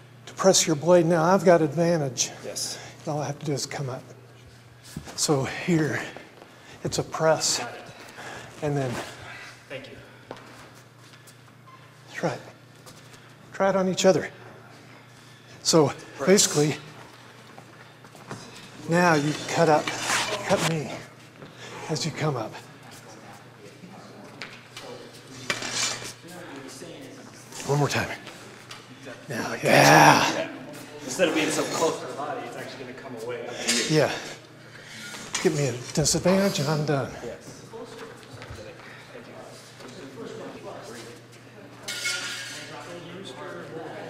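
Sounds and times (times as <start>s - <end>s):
people talking: 6.8s - 8.0s, 8.6s - 9.1s, 15.6s - 16.8s, 18.8s - 21.1s, 29.1s - 34.3s.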